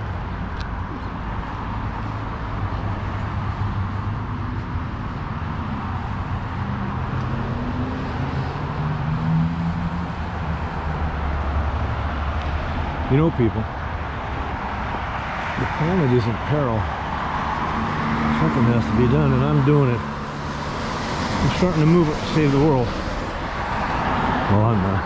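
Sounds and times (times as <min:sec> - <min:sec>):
road traffic rumble: 0:00.0 - 0:25.0
engine note rising and falling: 0:15.6 - 0:25.0.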